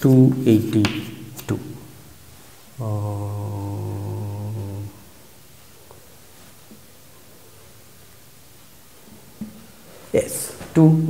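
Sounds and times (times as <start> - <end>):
man humming: 2.8 - 5.3.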